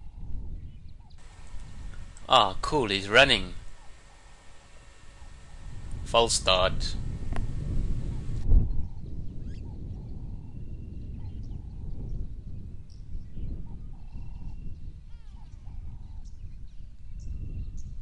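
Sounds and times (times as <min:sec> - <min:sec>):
steady low rumble: 0:01.2 - 0:08.5.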